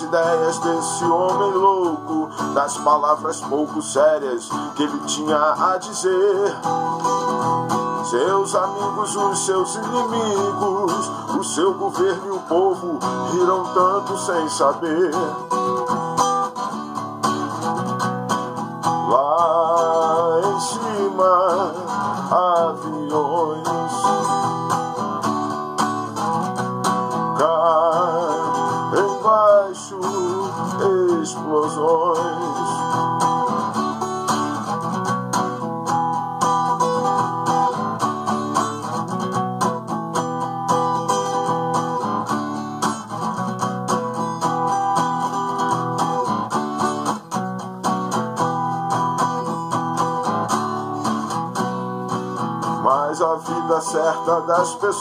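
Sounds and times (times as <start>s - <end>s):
acoustic guitar chords: 0.0s - 55.0s.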